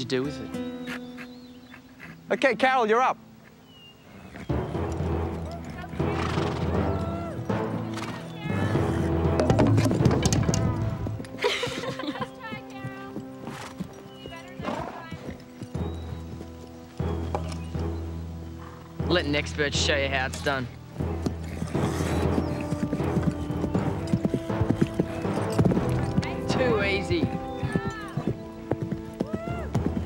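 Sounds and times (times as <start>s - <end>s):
background score music: 0.0s - 30.0s
horse hoofbeats: 3.4s - 30.0s
horse whinnying: 4.0s - 12.0s, 21.3s - 30.0s.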